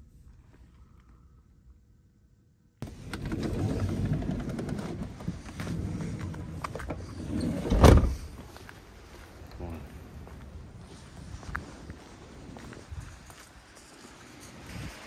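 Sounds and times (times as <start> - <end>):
blustery outdoor wind: 0.0 - 15.0
van side door opening: 2.8 - 8.4
van door shutting thud: 7.6 - 8.3.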